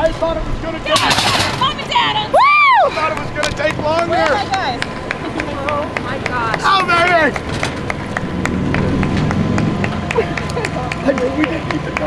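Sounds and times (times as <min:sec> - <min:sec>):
outdoor hubbub: 0:00.0 - 0:12.0.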